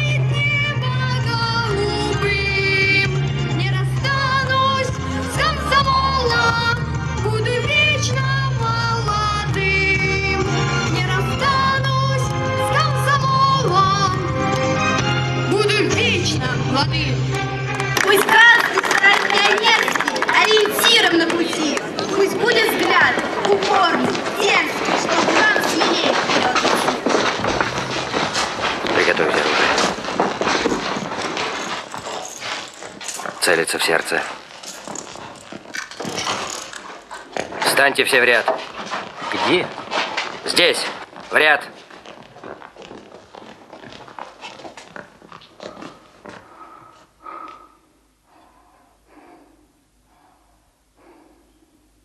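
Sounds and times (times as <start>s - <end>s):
shuffling footsteps: 0.0s - 50.4s
instrumental accompaniment: 0.1s - 18.3s
men's indistinct voices: 19.4s - 35.1s, 37.5s - 41.8s.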